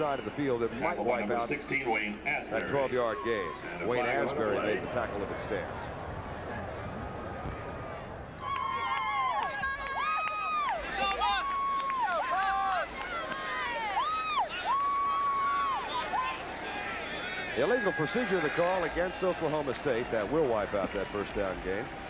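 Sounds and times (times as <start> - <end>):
stadium crowd noise: 0.0 - 22.0
cheerleaders yelling chants: 8.4 - 19.3.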